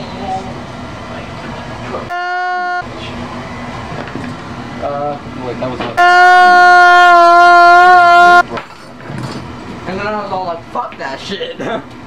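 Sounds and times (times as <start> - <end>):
workshop room noise: 0.0 - 12.0
loud horn-like tone: 2.1 - 2.9, 6.0 - 8.4.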